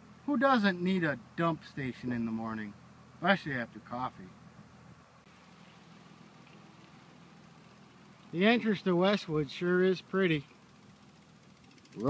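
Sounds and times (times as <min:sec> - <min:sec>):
faint steady background hiss: 0:00.0 - 0:12.0.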